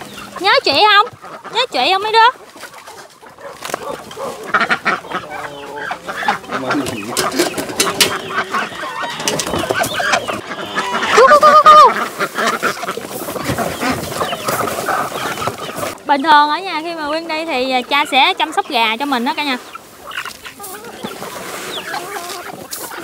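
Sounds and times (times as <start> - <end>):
chickens and ducks clucking: 0.0 - 23.0.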